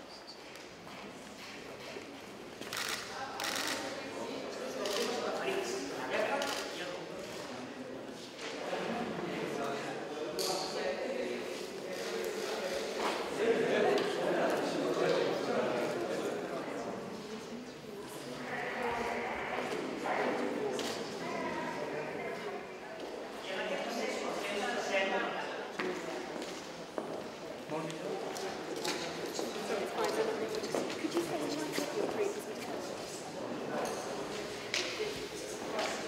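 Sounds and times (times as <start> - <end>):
chatter of people talking: 0.0 - 36.0.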